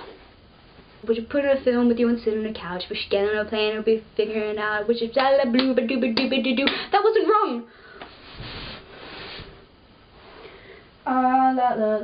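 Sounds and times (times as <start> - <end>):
person breathing out: 10.3 - 11.0.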